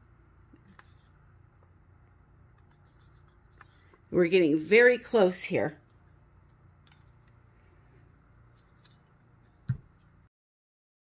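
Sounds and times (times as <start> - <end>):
faint low room hum: 0.0 - 10.3.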